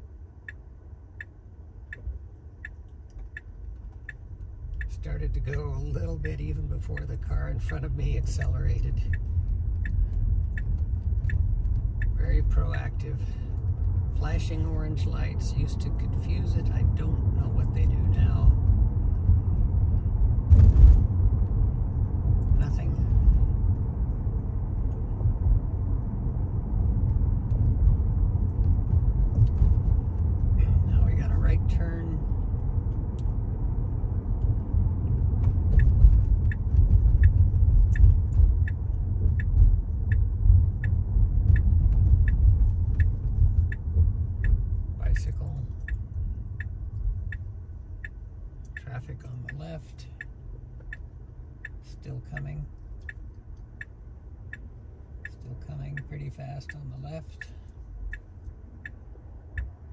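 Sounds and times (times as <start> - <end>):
road and tyre rumble in car: 0.0 - 59.9
turn signal ticking: 0.0 - 59.9.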